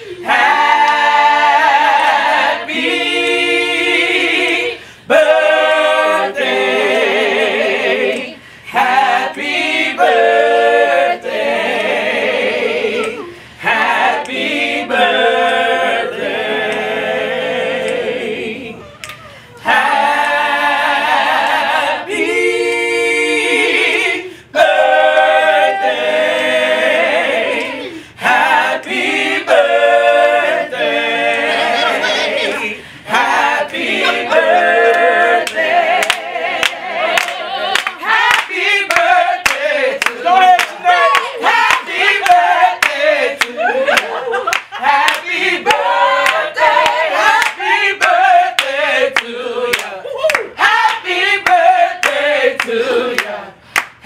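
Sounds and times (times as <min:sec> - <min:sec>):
group singing a cappella in harmony: 0:00.0 - 0:54.0.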